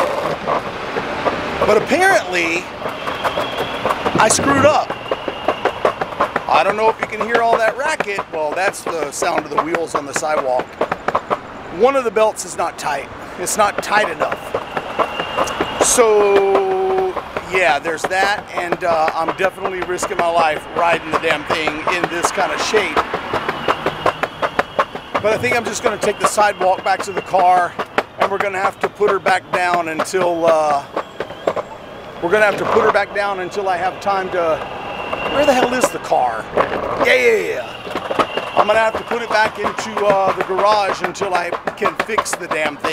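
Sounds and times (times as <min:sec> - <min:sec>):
skateboard wheels clicking and clattering: 0:00.0 - 0:42.9.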